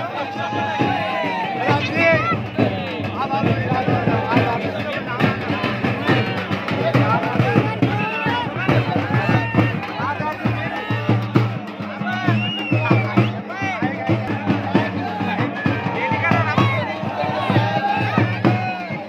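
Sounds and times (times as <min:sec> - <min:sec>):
frame drums beaten with sticks: 0:00.0 - 0:19.0
voices shouting and talking: 0:00.0 - 0:19.0.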